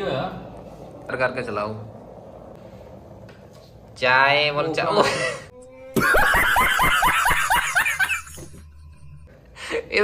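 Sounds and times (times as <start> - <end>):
man laughing hard: 5.0 - 8.6.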